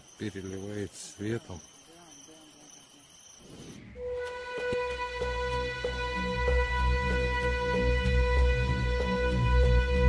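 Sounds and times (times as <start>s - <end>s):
crickets chirping: 0.0s - 4.7s.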